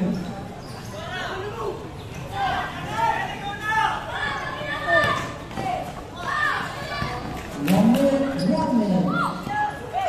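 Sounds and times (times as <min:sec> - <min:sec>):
people shouting: 0:02.3 - 0:07.2.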